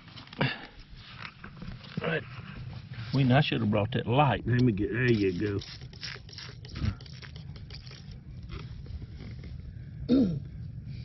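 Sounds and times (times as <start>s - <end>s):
fingers scraping damp soil: 4.5s - 9.7s.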